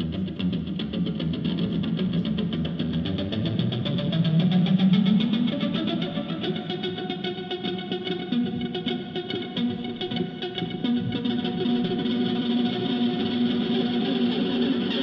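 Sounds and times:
electric guitar with effects: 0.0 - 15.0.

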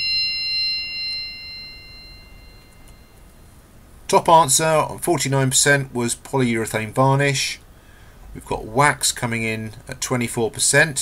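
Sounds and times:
bell-like chime: 0.0 - 3.6.

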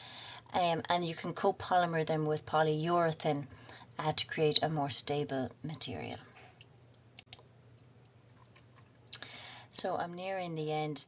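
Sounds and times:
intake of breath: 0.0 - 0.4, 9.3 - 9.7.

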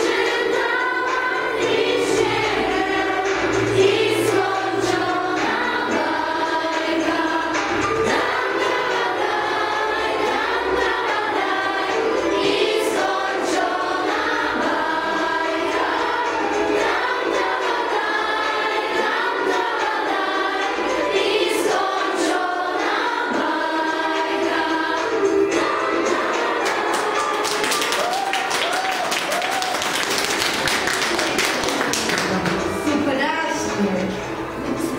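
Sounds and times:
girls singing together: 0.0 - 32.2
people clapping: 26.6 - 32.9.

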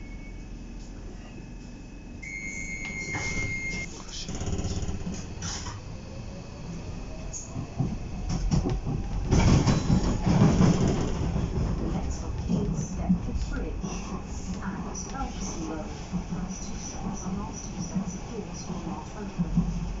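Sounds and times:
electronic warning tone: 2.2 - 3.9
wheel and track rumble: 2.9 - 20.0.

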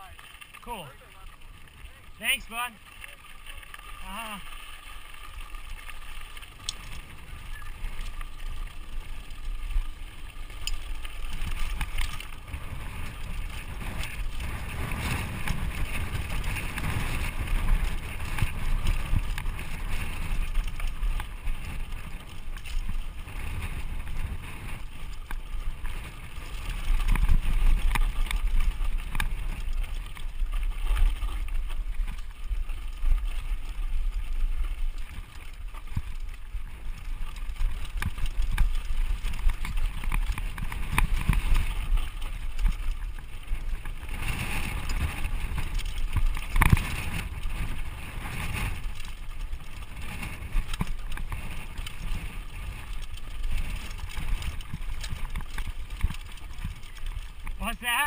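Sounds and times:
bike tyre noise: 0.0 - 58.0.

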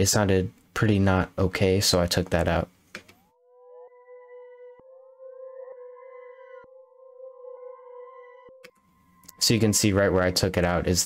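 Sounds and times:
synth drone with pitch sweep: 3.2 - 10.8.

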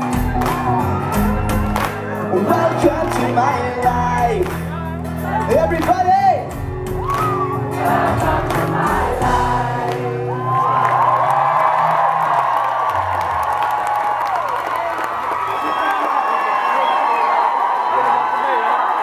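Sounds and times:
pop-punk band chords: 0.0 - 10.6
crowd cheering and singing: 0.0 - 19.0.

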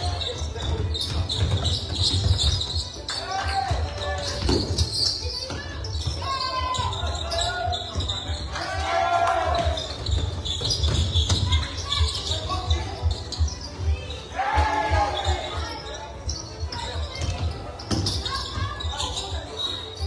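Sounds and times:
footsteps on gym floor: 0.0 - 8.7.

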